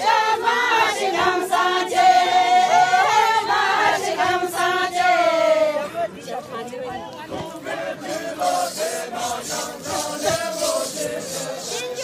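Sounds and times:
group of women singing in unison: 0:00.0 - 0:06.1, 0:07.2 - 0:12.0.

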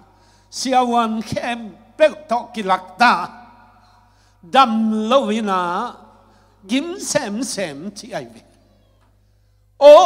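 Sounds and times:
man preaching: 0:00.0 - 0:08.7, 0:09.8 - 0:10.0.

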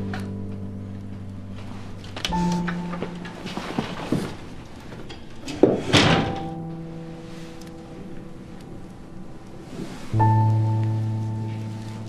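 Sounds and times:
background music chord: 0:00.0 - 0:04.8, 0:06.3 - 0:12.0.

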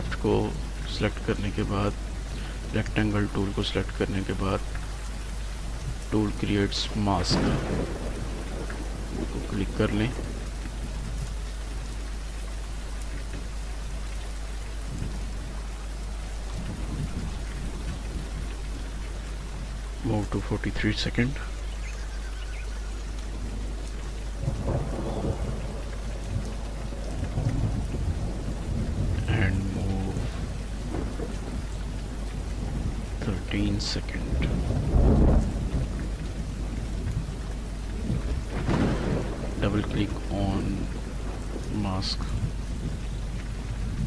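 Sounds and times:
person narrating: 0:00.0 - 0:02.0, 0:02.7 - 0:04.6, 0:06.1 - 0:07.7, 0:09.4 - 0:10.2, 0:20.0 - 0:21.5, 0:29.2 - 0:30.4, 0:33.2 - 0:34.6, 0:39.6 - 0:41.0, 0:41.7 - 0:42.4
hiss-like background noise: 0:00.0 - 0:44.0.

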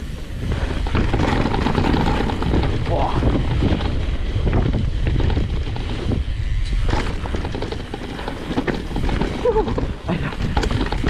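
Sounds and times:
bike knocks and rattles: 0:00.0 - 0:11.0
bike tyre noise on dirt: 0:00.0 - 0:11.0
wind buffeting microphone: 0:00.0 - 0:11.0.

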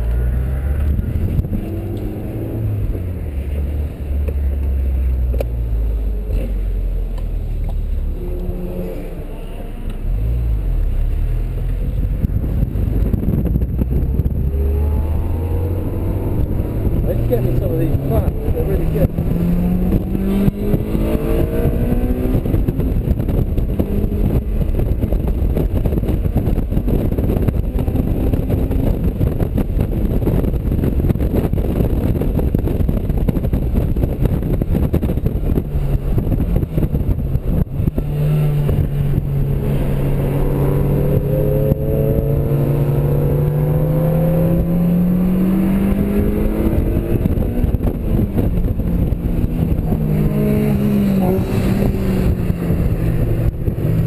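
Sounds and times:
car engine accelerating: 0:00.0 - 0:54.0.

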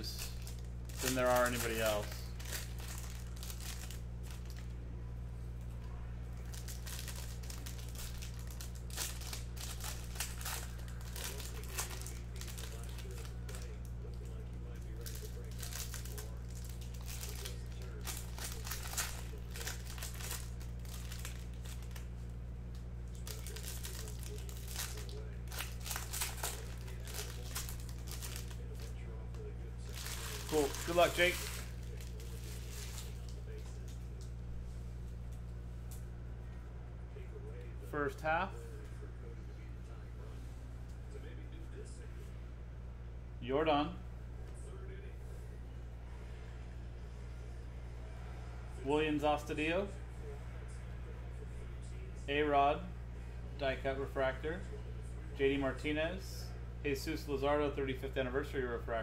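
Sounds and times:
foil wrappers crinkling and tearing: 0:00.0 - 0:04.7, 0:06.4 - 0:34.3
steady low hum: 0:00.0 - 0:59.0.

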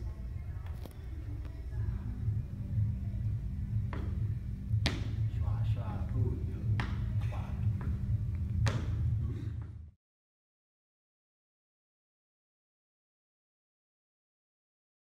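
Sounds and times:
low room hum: 0:00.0 - 0:10.0
boot heels knocking on rubber mat: 0:03.9 - 0:04.2, 0:04.8 - 0:05.2.

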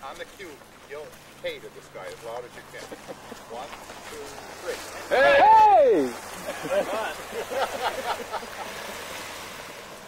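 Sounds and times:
people laughing and chattering: 0:02.4 - 0:09.1
loud group shout: 0:05.1 - 0:07.2.

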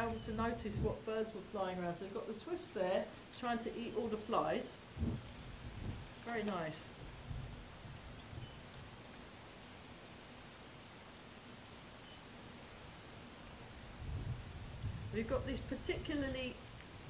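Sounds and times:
wind buffeting microphone: 0:00.0 - 0:01.5, 0:04.9 - 0:06.2, 0:07.0 - 0:08.7, 0:13.9 - 0:17.0.

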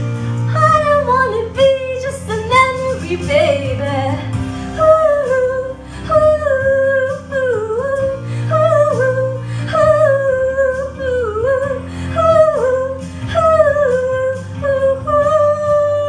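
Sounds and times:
soft low accompaniment: 0:00.0 - 0:16.0
woman singing wordless melody: 0:00.4 - 0:16.0.

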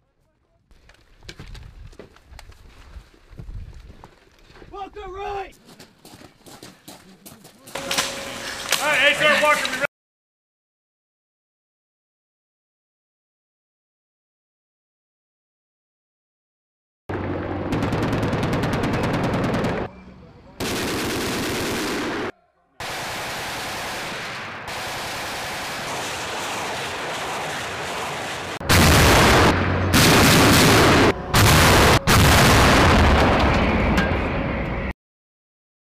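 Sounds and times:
automatic weapon fire: 0:17.7 - 0:19.9, 0:20.6 - 0:33.5.

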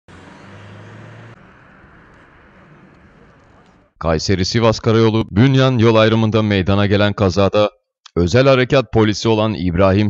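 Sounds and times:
vehicle engine running: 0:00.1 - 0:04.0.

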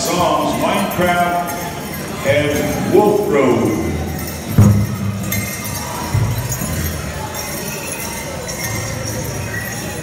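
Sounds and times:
bells jingling: 0:00.0 - 0:10.0.

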